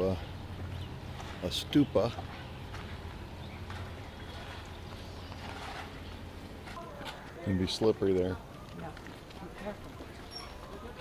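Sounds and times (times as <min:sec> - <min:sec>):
steady low rumble: 0:00.0 - 0:06.8
faint footsteps on street: 0:00.0 - 0:11.0.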